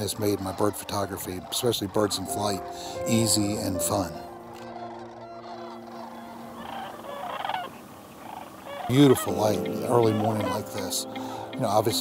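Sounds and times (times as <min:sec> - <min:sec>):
cranes calling: 0:00.0 - 0:12.0.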